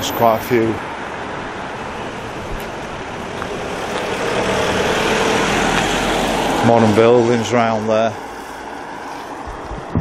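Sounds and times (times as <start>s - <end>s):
car driving on wet road: 0.0s - 10.0s.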